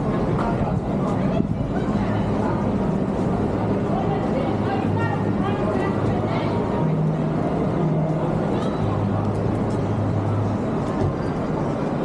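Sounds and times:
crowd chatter: 0:00.0 - 0:12.0
idling engines humming: 0:00.0 - 0:12.0
traffic: 0:00.0 - 0:12.0.

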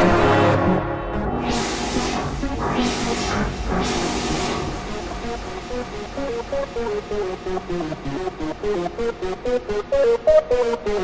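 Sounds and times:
held synth notes: 0:00.0 - 0:11.0
noise sweep: 0:01.1 - 0:11.0.

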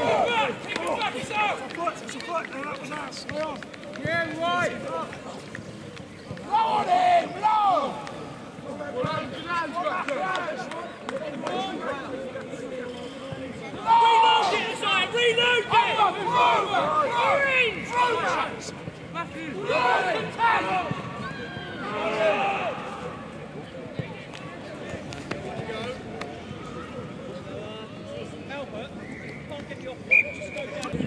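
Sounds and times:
voices shouting: 0:13.8 - 0:18.7, 0:19.4 - 0:22.9.

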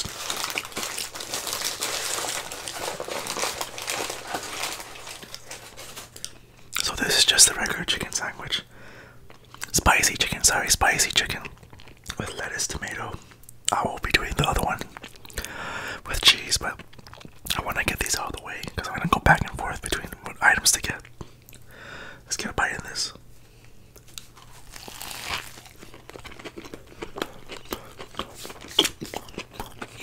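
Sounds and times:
paper wrapper crinkling: 0:00.0 - 0:06.4, 0:24.1 - 0:26.7.

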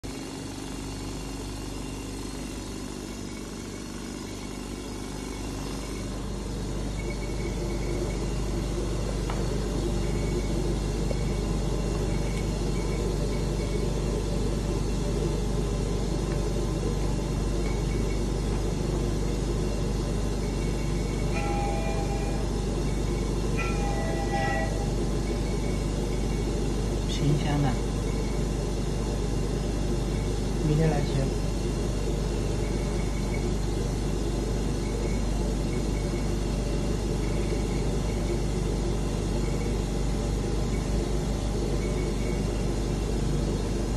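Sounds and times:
low drone of test equipment: 0:00.0 - 0:43.9.

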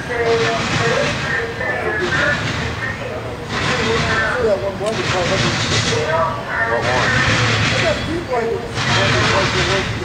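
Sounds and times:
freight train wheels rolling: 0:00.0 - 0:10.0.

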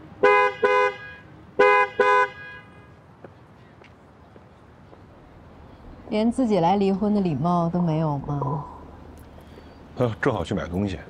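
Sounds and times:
two-tone car horn beeps: 0:00.2 - 0:02.9.

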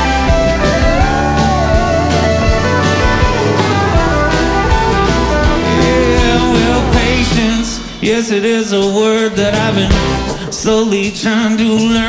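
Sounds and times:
gliding lead guitar: 0:00.0 - 0:08.1
drums steady beat: 0:00.0 - 0:12.0
live band playing: 0:00.0 - 0:12.0.

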